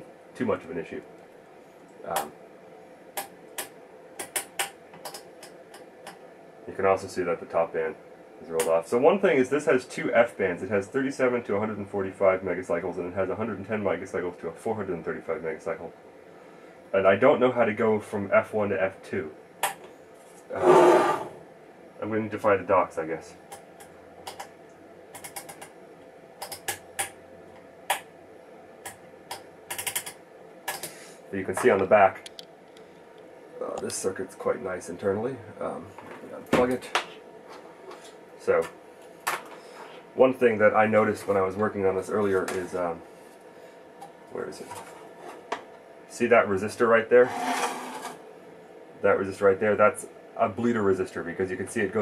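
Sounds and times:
faint steady hum: 0.0 - 52.0
knobs and switches clicking: 31.6 - 32.5.

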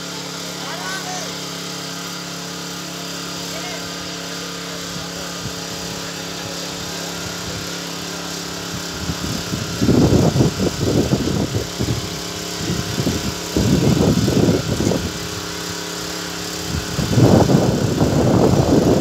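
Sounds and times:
irregular bursts of noise: 0.0 - 19.0
small engine running: 0.0 - 19.0.

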